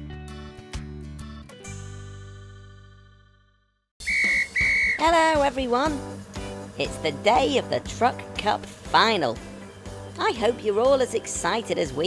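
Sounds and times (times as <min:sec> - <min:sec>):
referee's whistle blasts: 0:04.0 - 0:05.0.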